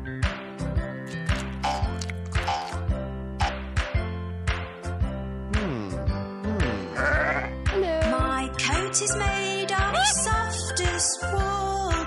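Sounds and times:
sheep bleating: 6.7 - 7.6
children's song backing music: 7.4 - 12.0.

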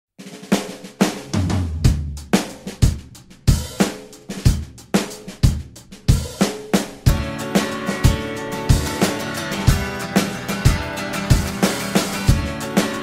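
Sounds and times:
drum kit beat: 0.2 - 13.0.

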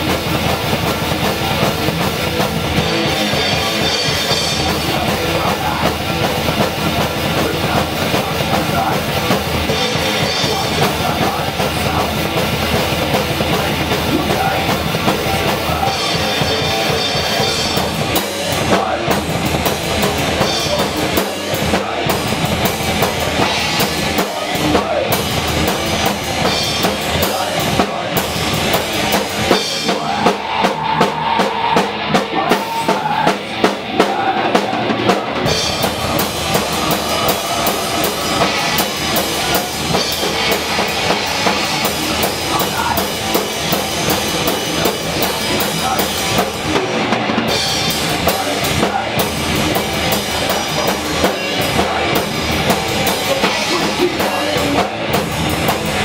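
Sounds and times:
drum kit beat: 0.0 - 56.0
live rock band: 0.0 - 56.0.

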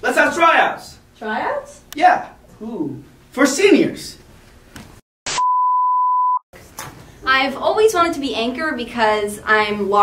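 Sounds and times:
steady test tone beep: 5.3 - 6.4.

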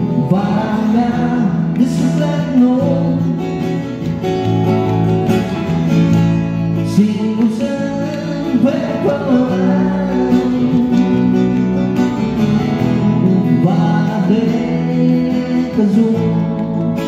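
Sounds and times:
acoustic guitar: 0.0 - 17.0.

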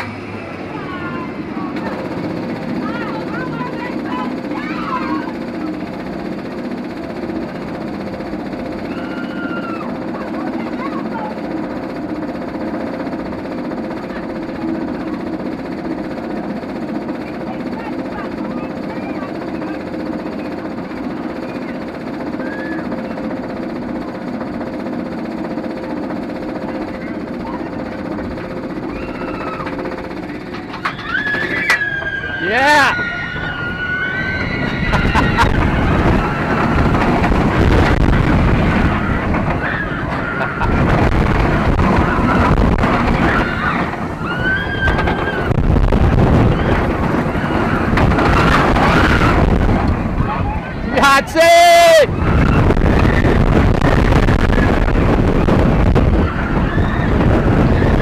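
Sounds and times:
roller coaster climbing hum: 0.0 - 58.0
rushing wind and track roar: 0.0 - 58.0
riders screaming: 2.8 - 5.5, 8.7 - 10.3, 22.3 - 23.2, 28.8 - 29.9, 30.6 - 58.0.

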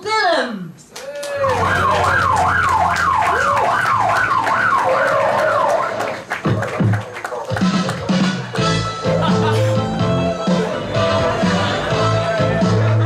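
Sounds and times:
siren wail: 1.3 - 6.3.

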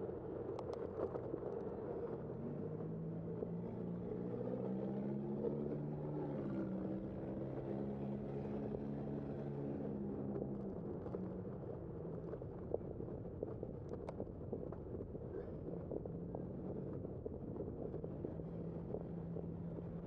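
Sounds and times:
wind and road noise of bicycle: 0.0 - 20.0.

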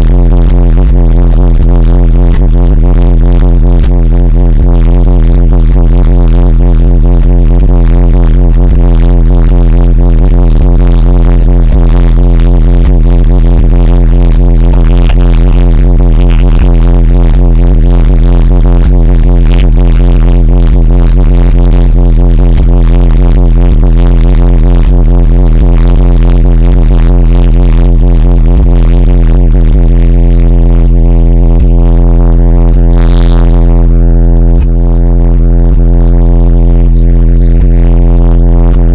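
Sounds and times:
distorted deep bass tone: 0.0 - 38.9.

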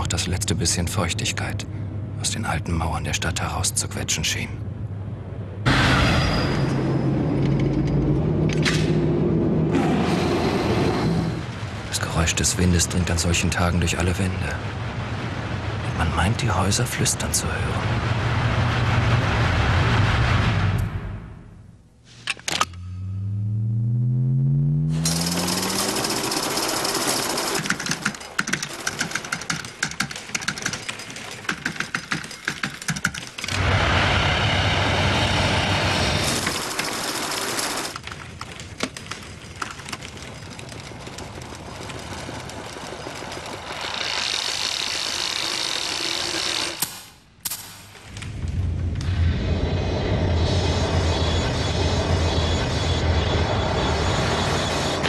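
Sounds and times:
dense rush of noise: 0.1 - 22.0, 33.5 - 37.4, 47.2 - 55.0
trailer music: 17.8 - 21.8, 22.6 - 26.0, 48.1 - 55.0
rising pitched tone: 22.7 - 26.0, 48.2 - 55.0.

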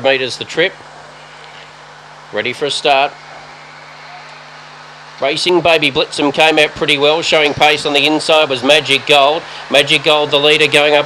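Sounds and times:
faint hiss: 0.0 - 11.0
steady low hum: 0.0 - 11.0.

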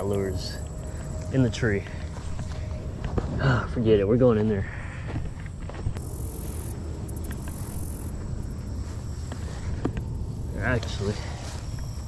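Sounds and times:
high insect buzz: 0.0 - 3.2, 4.7 - 12.0
rustling on grass: 5.4 - 12.0.

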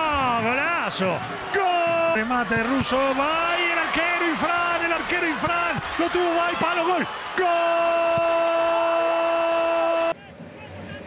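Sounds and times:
man shouting goal: 0.0 - 10.2.

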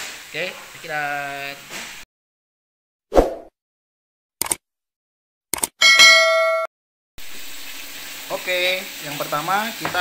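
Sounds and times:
bright bell ding: 5.8 - 6.7.

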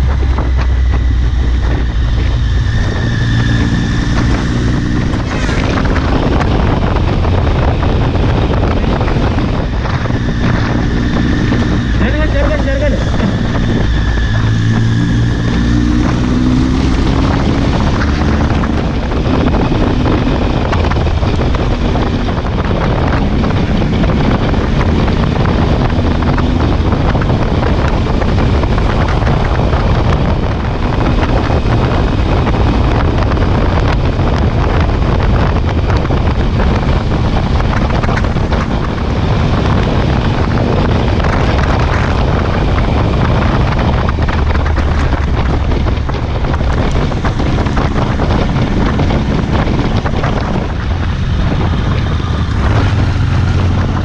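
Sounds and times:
motorcycle engine running: 0.0 - 54.0
wind rush on microphone: 0.0 - 54.0.

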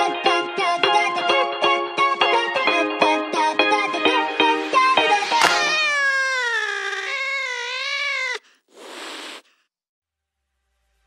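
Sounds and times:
short hissing burst: 8.2 - 9.6.

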